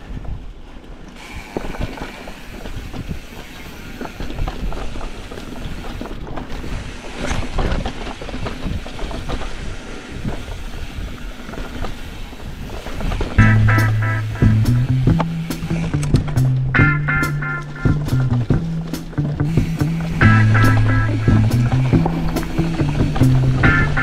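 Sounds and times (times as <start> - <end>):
bike tyres on dirt trail: 0.0 - 24.0.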